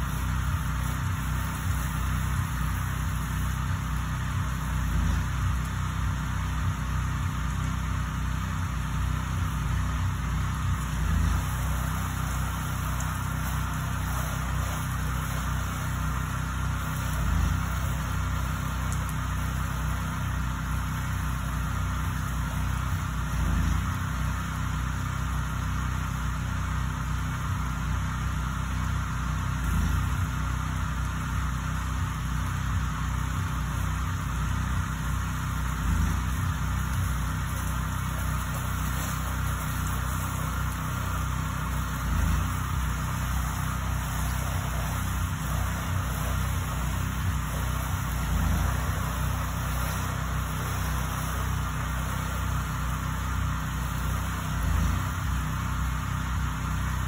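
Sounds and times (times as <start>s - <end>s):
hiss of water spray: 0.0s - 57.0s
wash pump engine humming: 0.0s - 57.0s.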